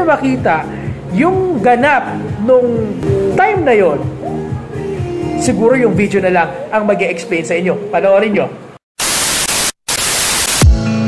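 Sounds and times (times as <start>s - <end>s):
music with deep falling beat: 2.3s - 5.6s
tv static hiss: 9.0s - 10.7s.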